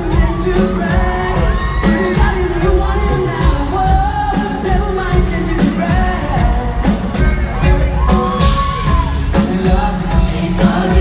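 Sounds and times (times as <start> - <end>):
drums: 0.0 - 11.0
guitar: 0.0 - 11.0
person singing lead vocal: 0.0 - 11.0.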